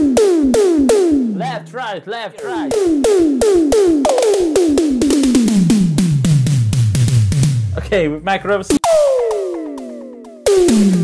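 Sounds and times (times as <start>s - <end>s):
electronic tom drum fill: 0.0s - 1.8s, 2.4s - 11.0s.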